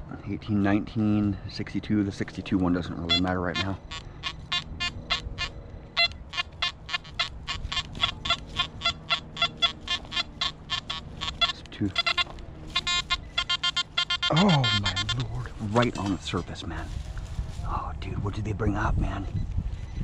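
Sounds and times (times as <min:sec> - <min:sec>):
metal detector beeping: 0:02.9 - 0:16.2.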